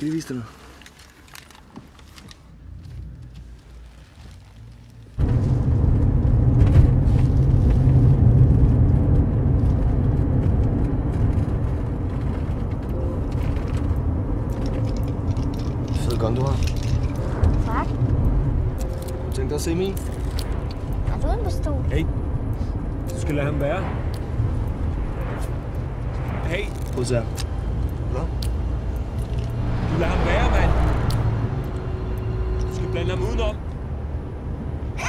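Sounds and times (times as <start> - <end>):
loud low rumble: 5.2 - 34.5.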